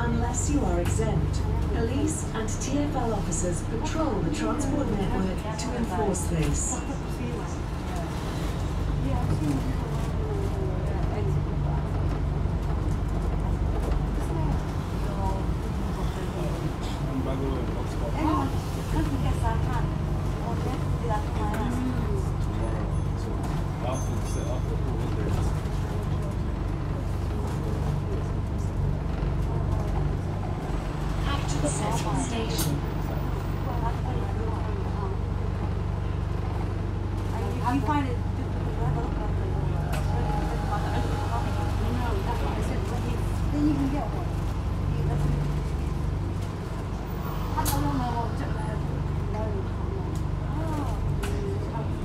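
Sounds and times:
bus drivetrain drone: 0.0 - 52.0
road and cabin noise: 0.0 - 52.0.

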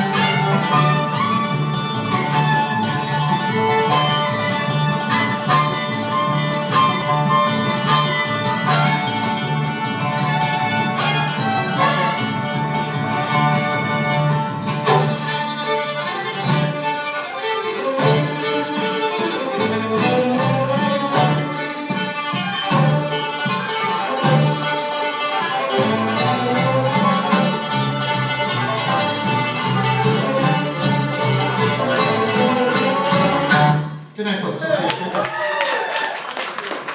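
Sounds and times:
fiddle: 0.0 - 34.0
bluegrass band playing: 0.0 - 34.6.

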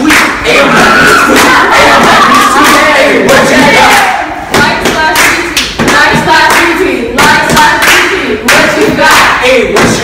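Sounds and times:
people clapping: 0.0 - 10.0
voices chanting: 0.0 - 10.0.

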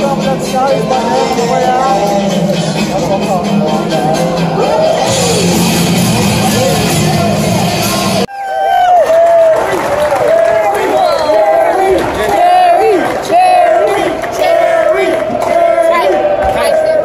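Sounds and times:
crowd cheering and shouting: 0.0 - 17.0
rock music: 2.1 - 8.3.

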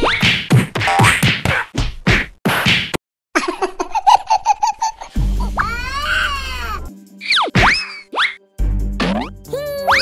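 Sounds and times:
cartoon whacks: 9.0 - 9.3.

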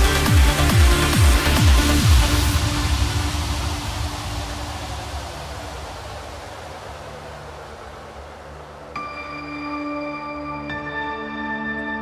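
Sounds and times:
hissing white-noise sweep: 0.0 - 10.6.

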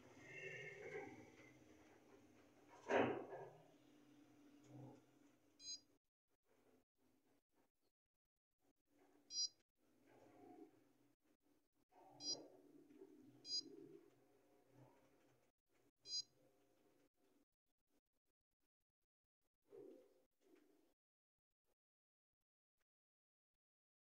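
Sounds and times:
short high key-press beeps: 16.1 - 16.3.

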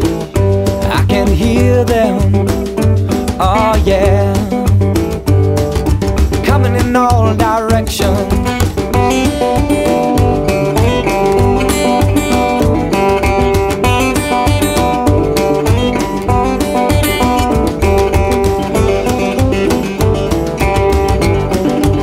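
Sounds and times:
bass: 0.0 - 22.0
steady drum beat: 0.0 - 22.0
strummed acoustic guitar: 0.0 - 22.0.

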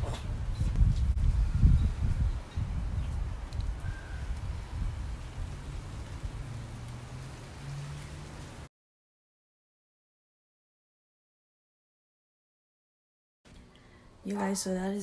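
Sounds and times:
wind buffeting microphone: 0.0 - 8.7.

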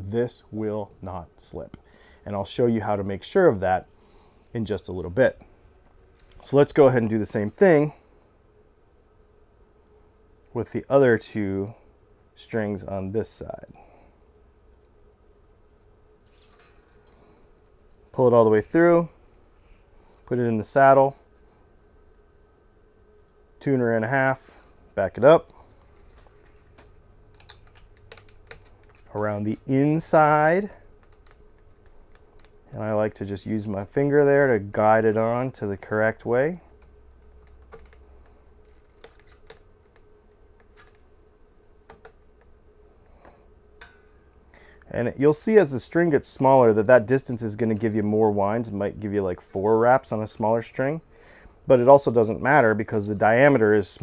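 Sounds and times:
faint steady hum: 0.0 - 54.0.

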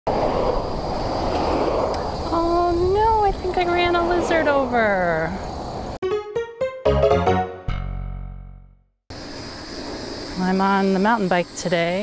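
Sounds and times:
road traffic passing: 0.1 - 6.0
wind noise on microphone: 0.1 - 6.0.

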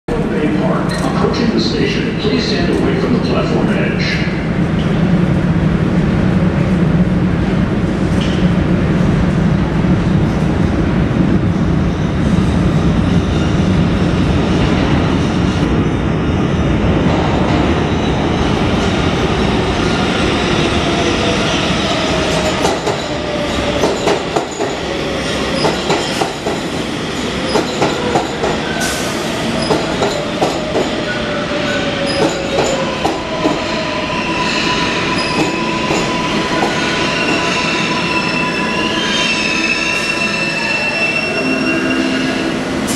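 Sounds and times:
subway train rumble: 0.1 - 42.9
high wheel squeal: 34.1 - 42.5.

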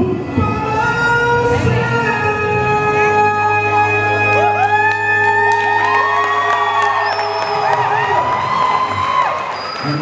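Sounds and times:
audience cheering and whooping: 4.3 - 10.0.

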